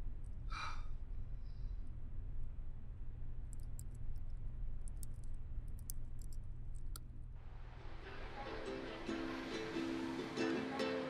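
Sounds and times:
low room hum: 0.0s - 11.0s
woman sighing: 0.5s - 0.9s.

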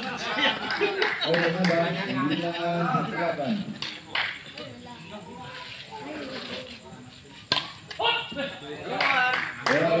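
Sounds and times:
racket hitting shuttlecock: 7.5s - 7.8s.

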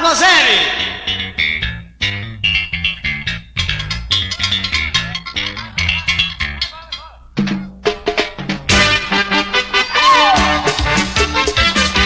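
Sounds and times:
electric guitar riff: 0.6s - 6.6s, 8.7s - 12.0s
electric bass line: 0.6s - 6.7s, 10.2s - 12.0s.

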